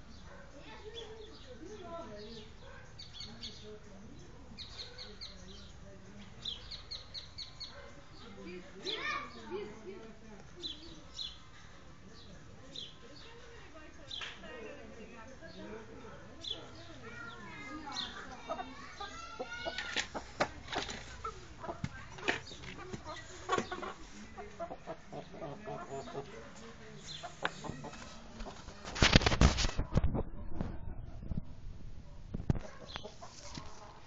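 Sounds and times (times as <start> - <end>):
chickens clucking: 16.4 - 31.4, 32.4 - 34.0.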